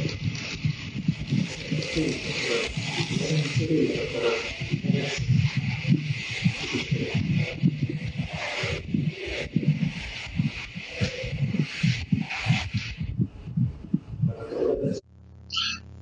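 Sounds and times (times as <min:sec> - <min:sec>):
jumble of indistinct room sounds: 0:00.0 - 0:16.0.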